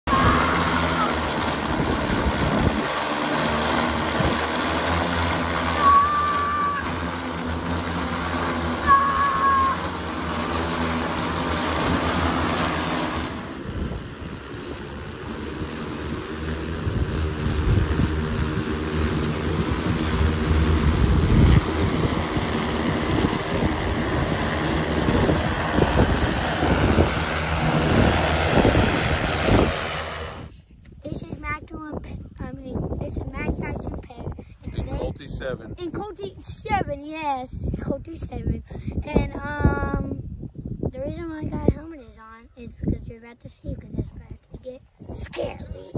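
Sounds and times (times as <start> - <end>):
drone propellers humming: 0.0 - 30.5.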